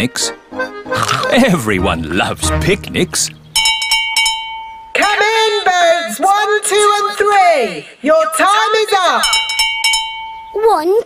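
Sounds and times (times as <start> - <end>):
hand bell ringing: 3.6 - 5.0, 9.2 - 10.6.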